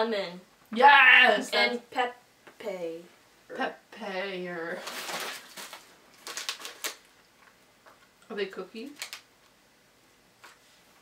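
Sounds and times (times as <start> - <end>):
plastic wrapper crinkling: 4.8 - 7.5, 8.9 - 9.3.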